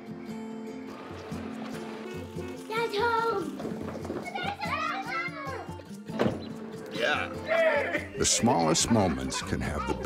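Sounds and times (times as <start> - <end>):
soft music with pulsing beat: 0.0 - 10.0
child calling out excitedly: 4.3 - 5.8.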